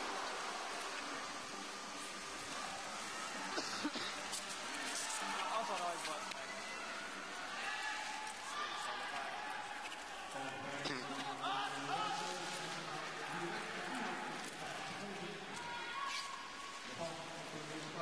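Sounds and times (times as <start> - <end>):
arena crowd noise: 0.0 - 18.0.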